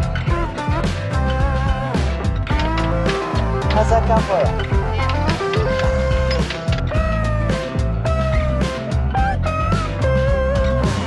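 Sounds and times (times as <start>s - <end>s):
background music with bass and beat: 0.0s - 11.0s.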